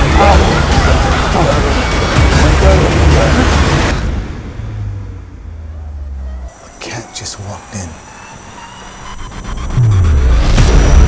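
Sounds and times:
low rumble riser: 3.4s - 11.0s.

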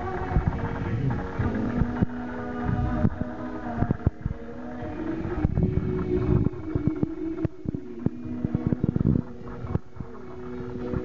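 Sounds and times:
low rumbling: 0.0s - 11.0s.

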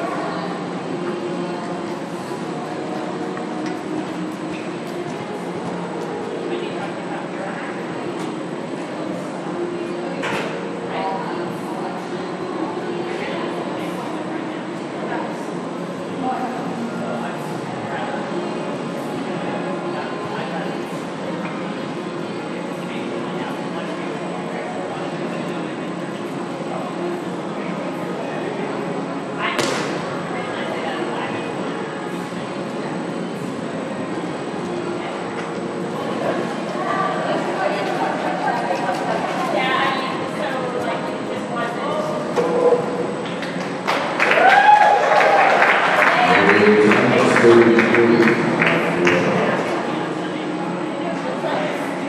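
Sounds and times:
steady hum: 0.0s - 44.2s, 45.8s - 52.0s
indoor arena hubbub: 0.0s - 52.0s
indistinct background voices: 46.0s - 52.0s.

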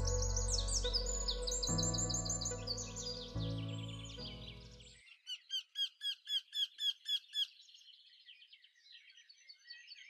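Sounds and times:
faint scattered birdsong: 0.0s - 10.0s
songbird chirping: 0.0s - 10.0s.

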